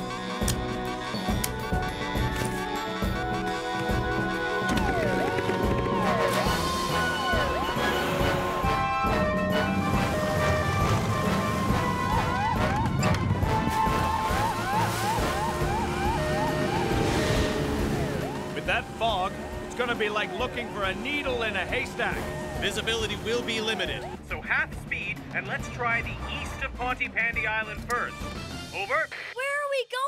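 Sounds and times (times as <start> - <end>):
upbeat cartoon action music: 0.0 - 29.4
boat engine rumble: 3.1 - 25.4.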